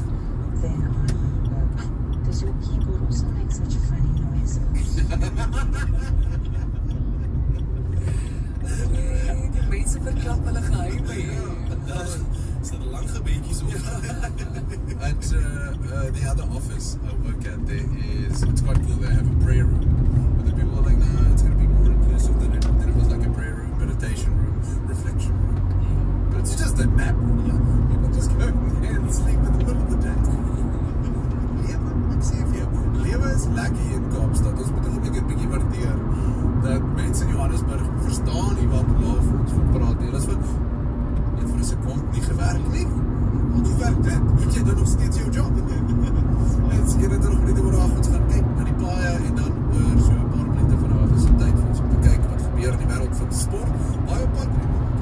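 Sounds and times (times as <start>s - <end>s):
car radio voices and music: 0.0s - 55.0s
car road and engine noise: 0.0s - 55.0s.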